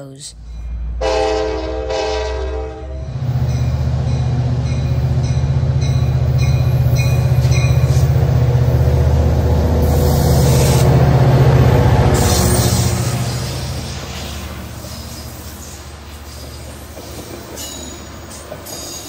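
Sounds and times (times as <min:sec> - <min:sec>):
diesel locomotive engine running: 0:00.0 - 0:19.0
locomotive horn: 0:01.0 - 0:03.1.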